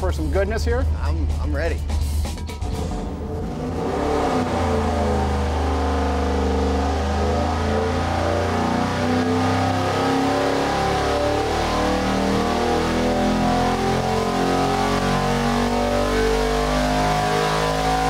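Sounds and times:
supercharged engine at full throttle: 2.5 - 18.0.

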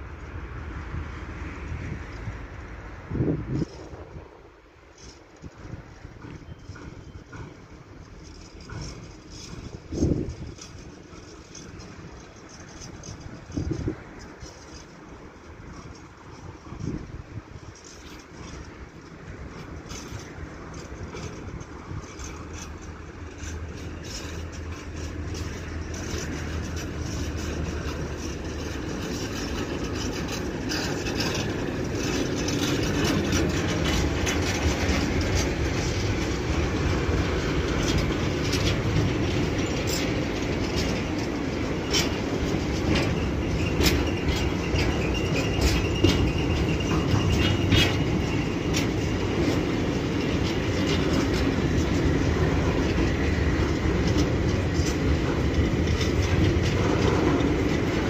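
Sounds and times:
train wheels clattering on rails: 0.0 - 58.0.

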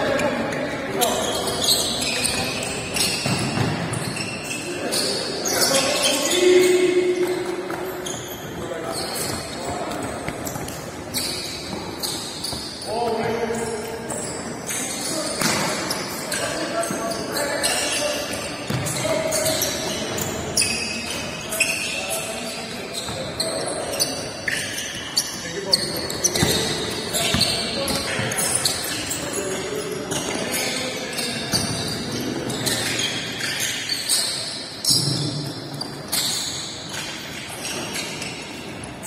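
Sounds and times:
players' voices echoing: 0.0 - 39.0
sneaker squeaks: 0.0 - 39.0.

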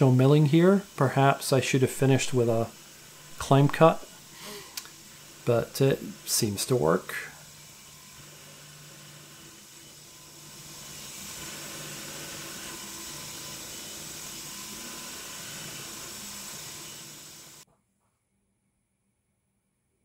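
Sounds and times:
milling machine cutting metal: 0.0 - 17.6.

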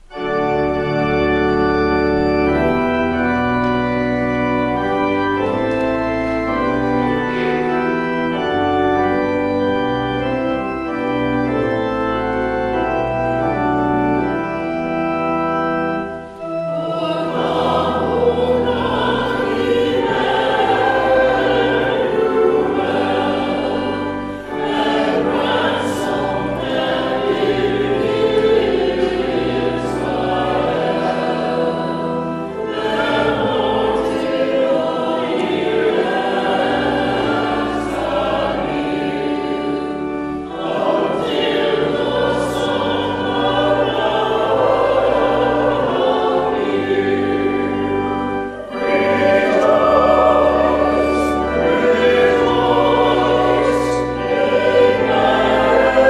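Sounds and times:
choir singing a hymn: 0.0 - 56.0
organ: 0.0 - 56.0.

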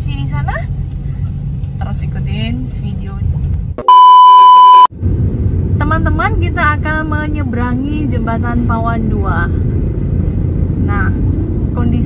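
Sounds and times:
car driving rumble inside cabin: 0.0 - 12.0
high-pitched test-tone beep: 3.8 - 4.9.

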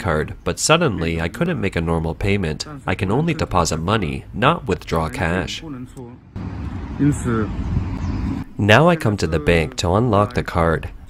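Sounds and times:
street traffic noise: 5.0 - 8.6.

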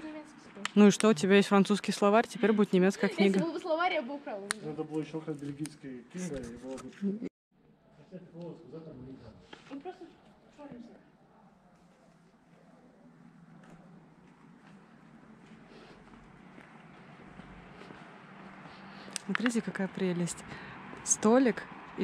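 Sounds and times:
street background noise: 0.0 - 7.1, 7.8 - 22.0
soft footsteps: 11.7 - 19.8.

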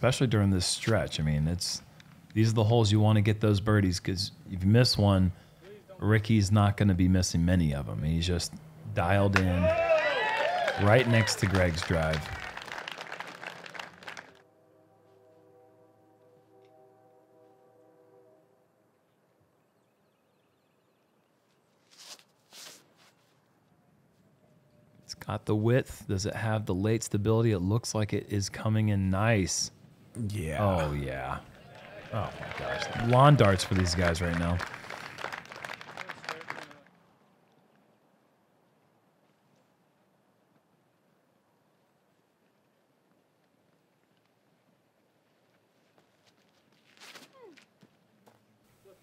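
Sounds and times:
short cheers: 9.2 - 14.4, 30.5 - 36.9
spectators applauding: 9.3 - 14.4, 30.8 - 36.9.

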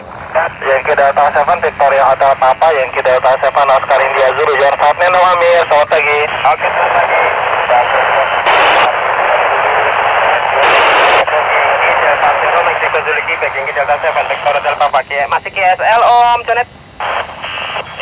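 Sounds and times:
noise bursts: 0.0 - 18.0
radio static hiss: 0.0 - 18.0
weak radio signals: 0.0 - 18.0.

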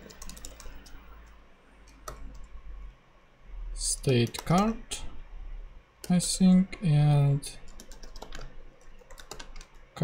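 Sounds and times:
computer keyboard key clicks: 7.7 - 9.8.

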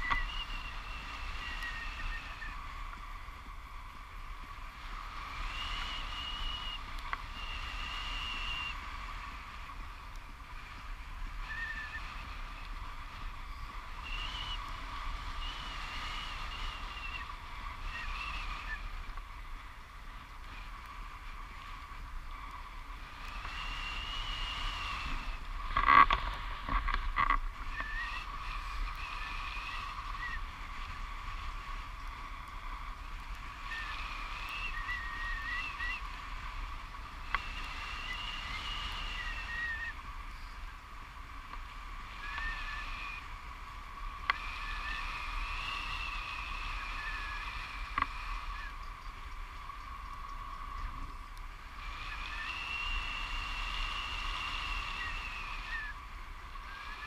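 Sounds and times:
high wavering whistles: 0.0 - 3.0, 5.2 - 9.8, 10.5 - 19.1, 27.5 - 32.7, 33.4 - 40.8, 42.1 - 57.0.

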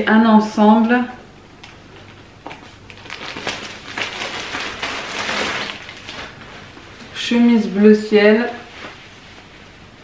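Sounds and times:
plastic bag crinkling: 2.0 - 6.7.

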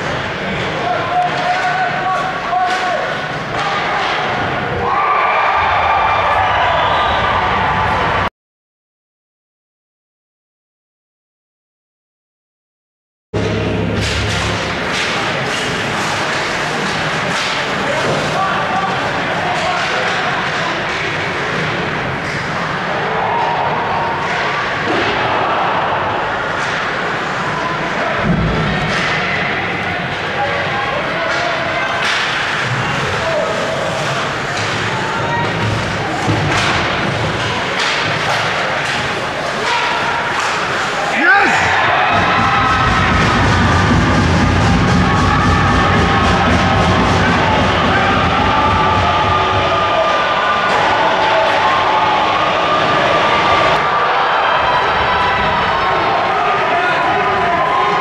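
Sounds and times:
hockey sticks and puck clacking: 0.0 - 4.8, 13.8 - 25.4, 26.3 - 43.4
crowd cheering and shouting: 0.0 - 8.3, 14.8 - 58.0.

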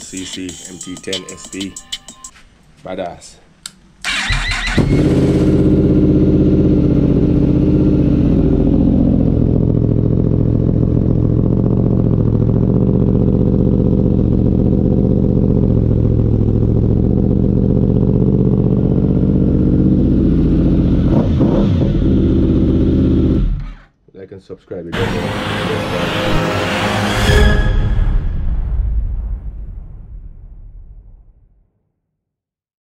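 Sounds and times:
quad engine idling: 9.2 - 20.8.

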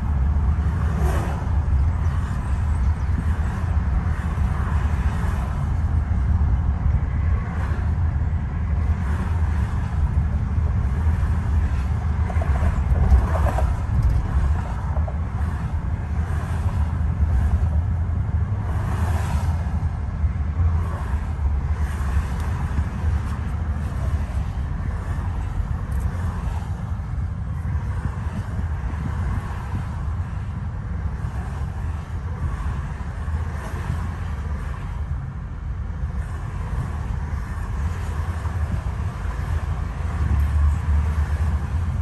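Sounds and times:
car road rumble from inside: 0.0 - 42.0.

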